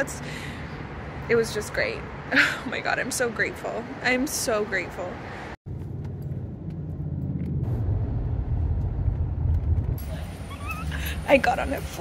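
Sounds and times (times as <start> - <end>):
low vehicle rumble: 5.3 - 12.0.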